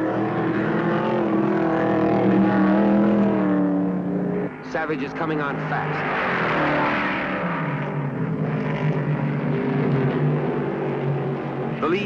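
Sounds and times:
racing car engine passing: 0.0 - 12.0.

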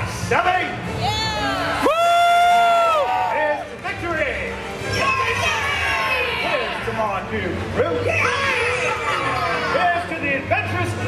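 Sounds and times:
high woo shouts: 1.0 - 3.6
audience cheering: 1.4 - 3.8.

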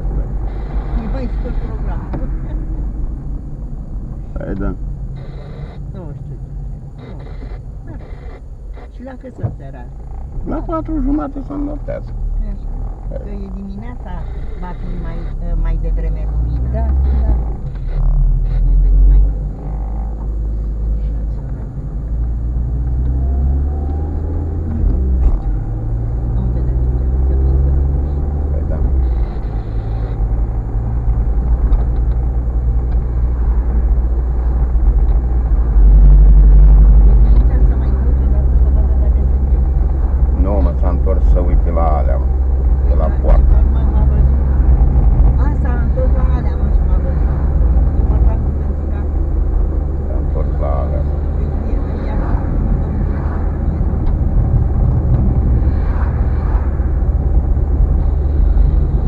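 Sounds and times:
engine and tyre road rumble: 0.0 - 59.0.

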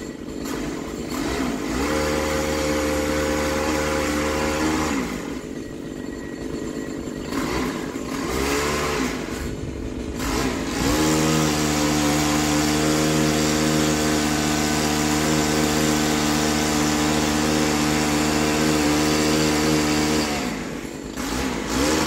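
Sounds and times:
pole saw engine revving: 0.0 - 22.0.

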